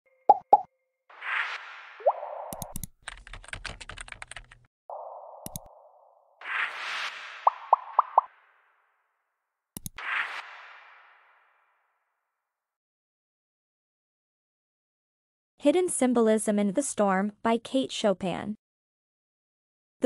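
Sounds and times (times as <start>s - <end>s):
mouse click: 2.5s - 2.9s, 5.4s - 5.7s, 9.8s - 10.0s
rapid keyboard typing clicks: 2.5s - 4.7s
whoosh: 6.4s - 8.8s, 10.0s - 11.8s.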